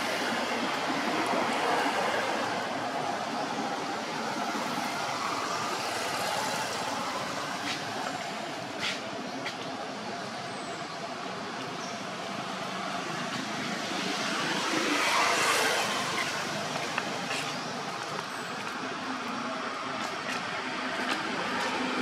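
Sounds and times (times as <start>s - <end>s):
steady background noise: 0.0s - 22.0s.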